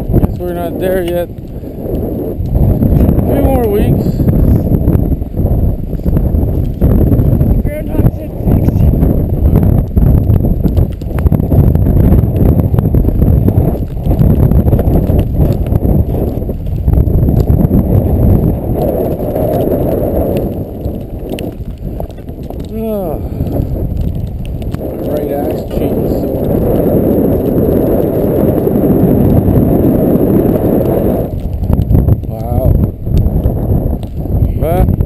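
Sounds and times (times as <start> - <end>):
wind buffeting the microphone: 0.0 - 35.0.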